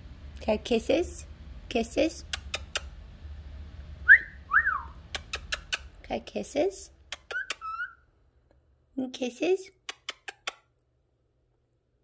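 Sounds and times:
kissing smacks: 2.3 - 2.9, 5.1 - 6.0, 7.1 - 7.9, 9.8 - 10.8
cockatiel whistling: 4.1 - 5.0, 7.3 - 8.0.

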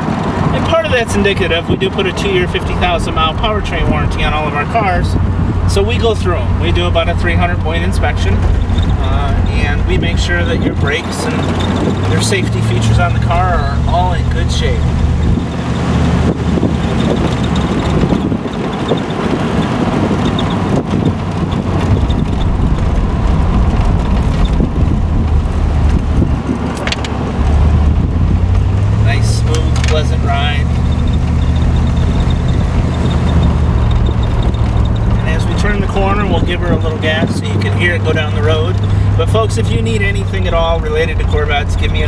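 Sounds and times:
car engine driving: 0.0 - 42.0
road noise: 0.0 - 42.0.

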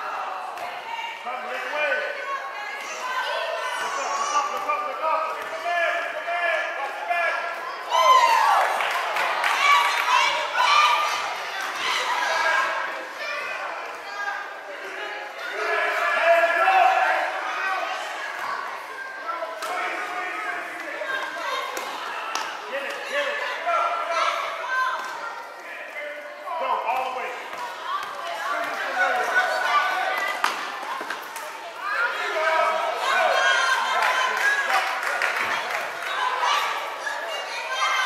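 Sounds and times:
overlapping voices in echoing hall: 0.0 - 38.0.

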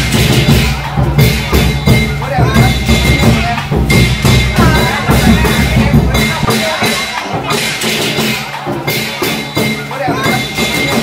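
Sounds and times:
crashing cymbals: 0.0 - 11.0
drum beaten fast: 0.0 - 11.0.

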